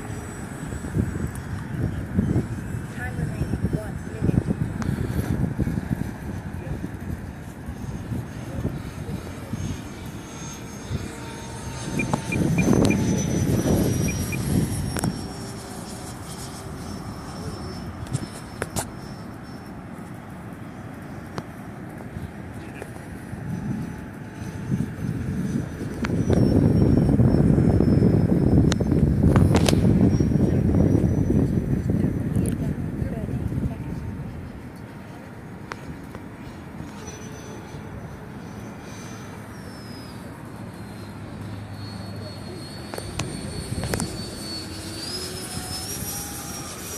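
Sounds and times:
air rushing noise: 0:00.0 - 0:46.9
electric ducted fan whine: 0:00.0 - 0:46.9.

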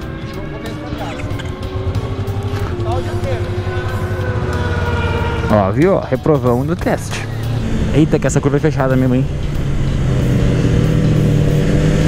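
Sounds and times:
motorcycle engine accelerating: 0:00.0 - 0:12.0.

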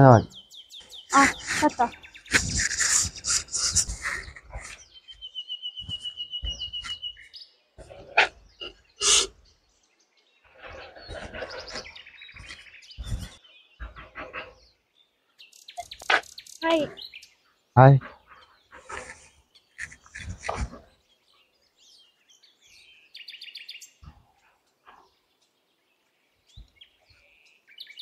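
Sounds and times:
bird trill: 0:00.0 - 0:09.5, 0:15.4 - 0:17.4
small birds calling: 0:00.0 - 0:28.0.

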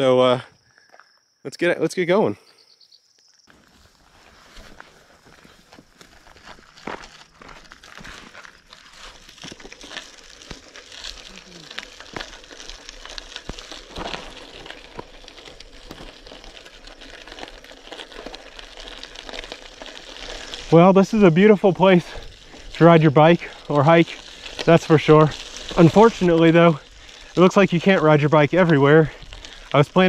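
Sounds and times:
bike tyres rolling on gravel: 0:00.0 - 0:30.0.

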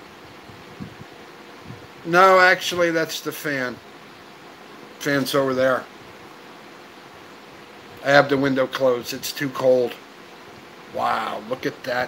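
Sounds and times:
electric fan whooshing: 0:00.0 - 0:12.0.

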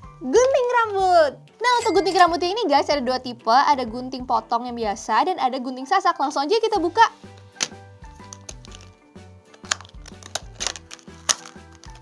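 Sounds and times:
plastic blister packs crackling: 0:07.5 - 0:12.0.

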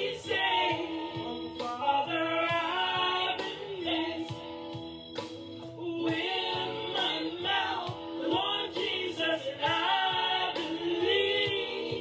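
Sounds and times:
woman singing gospel: 0:00.0 - 0:04.6, 0:05.7 - 0:12.0.

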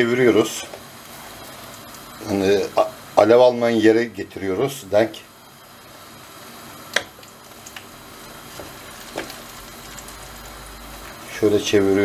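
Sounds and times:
pastry sizzling in a pan: 0:00.0 - 0:12.0.

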